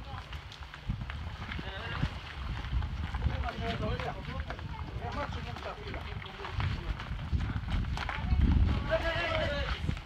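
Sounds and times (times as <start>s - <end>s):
men's voices: 3.2s - 7.7s, 8.8s - 10.0s.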